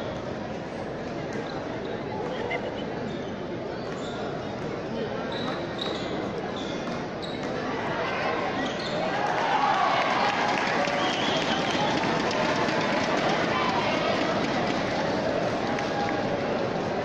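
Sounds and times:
crowd chatter: 0:00.0 - 0:17.0
crowd shouting and cheering: 0:07.8 - 0:17.0.

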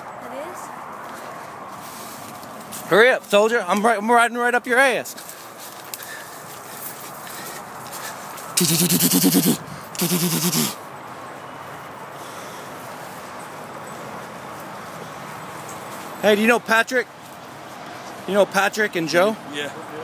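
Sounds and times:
outdoor background noise: 0:00.0 - 0:20.0
loud hoarse cries: 0:08.6 - 0:10.8.

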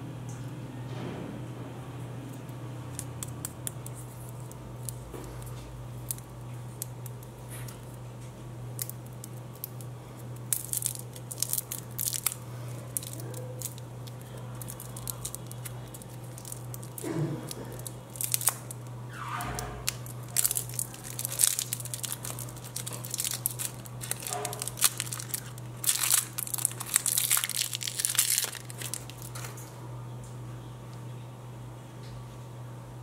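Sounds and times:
plastic wrapper crinkling: 0:02.3 - 0:08.0, 0:08.7 - 0:19.0, 0:19.8 - 0:29.7.

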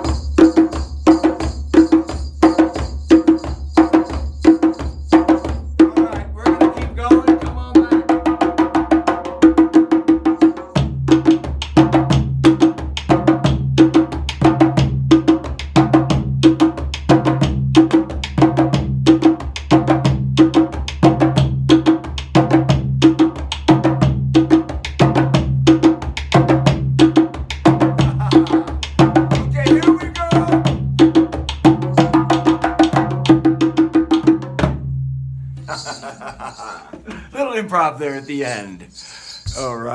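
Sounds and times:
hand drums playing a rhythm: 0:00.0 - 0:35.0
deep drum tone: 0:26.4 - 0:35.0.

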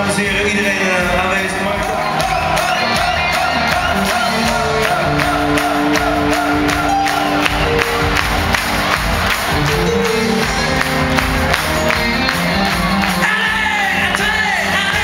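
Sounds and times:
live rock band playing: 0:00.0 - 0:15.0
steady drum beat: 0:00.0 - 0:15.0
large crowd cheering: 0:00.1 - 0:15.0.

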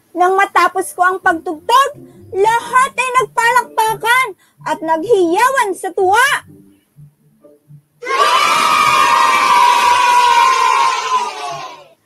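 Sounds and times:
children cheering and shouting: 0:08.0 - 0:12.0.

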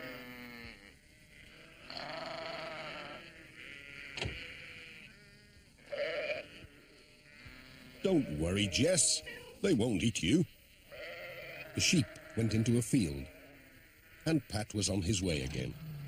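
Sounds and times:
sheep bleating: 0:00.0 - 0:09.6, 0:10.7 - 0:14.5.

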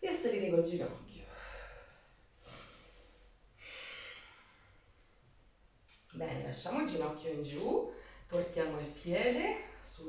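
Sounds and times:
woman breathing softly: 0:01.2 - 0:05.2.

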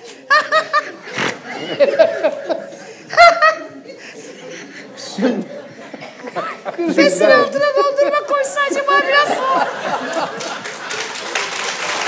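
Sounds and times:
people laughing: 0:00.0 - 0:12.0.

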